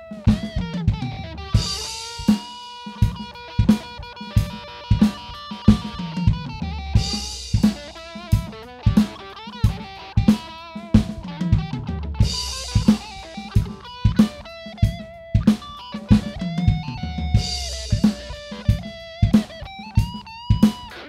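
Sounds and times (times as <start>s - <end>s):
drum kit beat: 0.0s - 21.0s
electric guitar: 0.0s - 21.0s.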